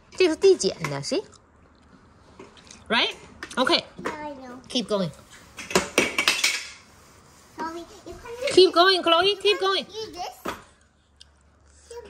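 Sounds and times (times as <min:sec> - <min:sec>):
chalk sticks clattering: 0:05.4 - 0:07.0.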